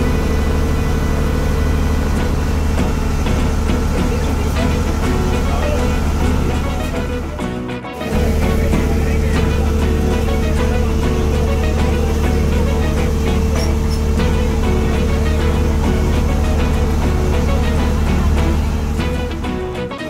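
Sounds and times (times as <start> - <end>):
water noise: 0.0 - 19.8
ferry engine drone: 0.0 - 20.0.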